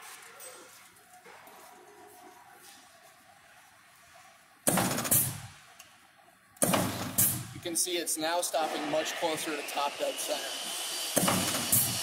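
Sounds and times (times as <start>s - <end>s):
punch press machine bursts: 8.4s - 12.0s.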